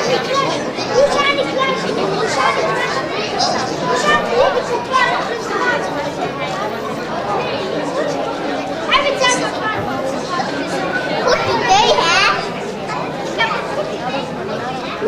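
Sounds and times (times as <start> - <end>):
children chattering: 0.0 - 15.0.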